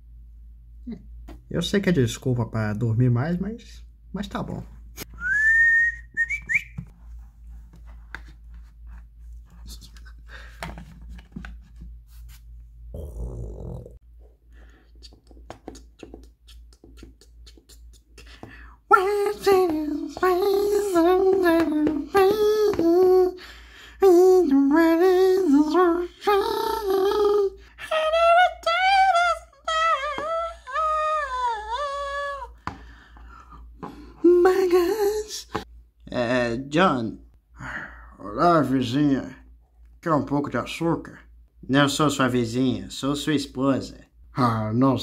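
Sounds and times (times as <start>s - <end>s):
person imitating growly snore: 12.9s - 14.0s
person humming high-pitched: 24.1s - 27.6s, 29.2s - 32.5s.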